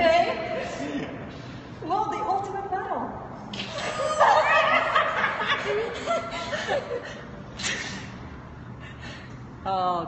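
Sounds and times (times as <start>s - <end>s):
people laughing: 3.7s - 7.3s.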